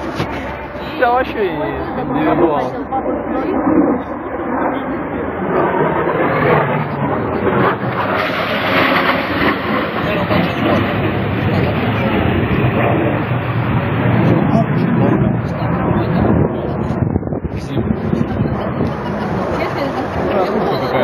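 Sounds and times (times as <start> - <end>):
aircraft engine roar: 0.0 - 21.0
indistinct voices: 0.0 - 21.0.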